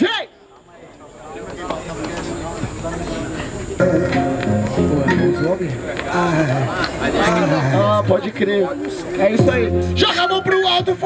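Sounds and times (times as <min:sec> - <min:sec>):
murmur of crowd: 0:00.0 - 0:11.0
hip-hop instrumental beat: 0:03.8 - 0:06.4, 0:08.3 - 0:11.0.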